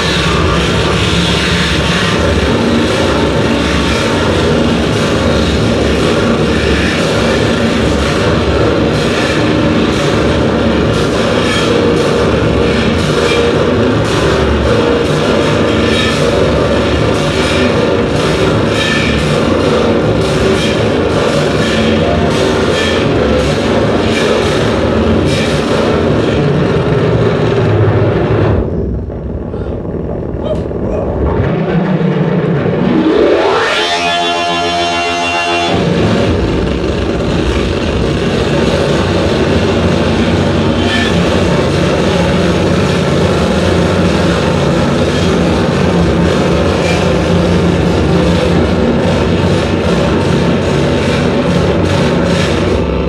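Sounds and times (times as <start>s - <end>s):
distorted electronic noise wall: 0.0s - 53.0s
stuttering pulsed tone: 0.0s - 53.0s
rising electronic sweep: 28.5s - 36.4s.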